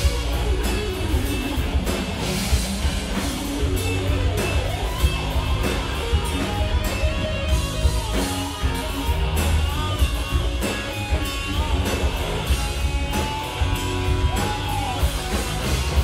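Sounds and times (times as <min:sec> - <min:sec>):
electric guitar lead line: 0:00.0 - 0:16.0
live rock band: 0:00.0 - 0:16.0.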